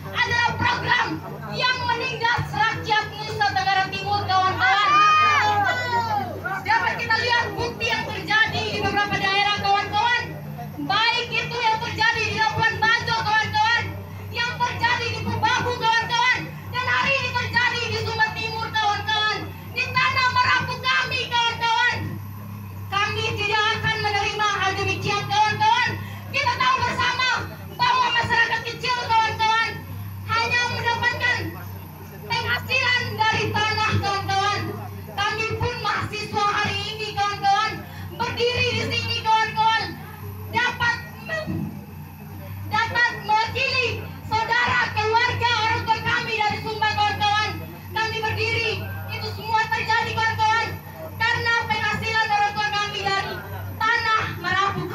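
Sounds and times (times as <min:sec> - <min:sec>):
woman speaking into a microphone: 0:00.0 - 0:22.2, 0:22.9 - 0:31.6, 0:32.2 - 0:41.8, 0:42.5 - 0:54.9
steady low hum: 0:00.0 - 0:54.9.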